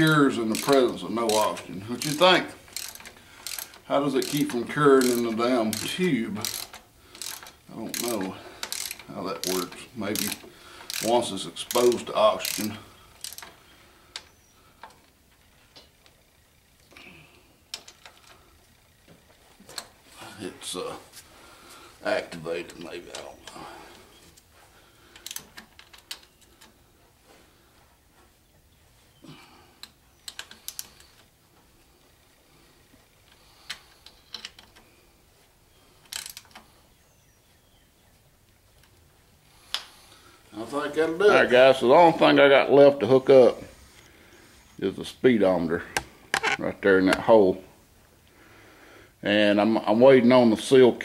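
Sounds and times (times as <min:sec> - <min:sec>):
ratchet wrench clicking: 0:00.0 - 0:15.0, 0:25.2 - 0:26.7, 0:29.8 - 0:31.3, 0:36.0 - 0:36.6.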